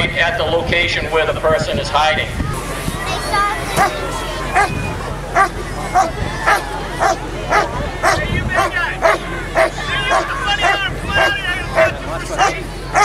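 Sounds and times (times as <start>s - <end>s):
dog barking: 5.4s - 13.0s.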